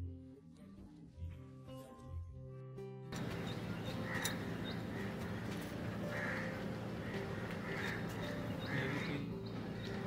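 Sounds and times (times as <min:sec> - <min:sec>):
distant birds calling: 0:03.2 - 0:10.0.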